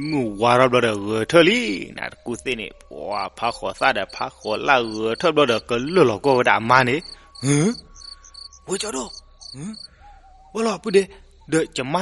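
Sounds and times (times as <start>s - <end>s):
person telling a story: 0.0s - 7.8s, 8.7s - 9.8s
insects chirping: 0.0s - 12.0s.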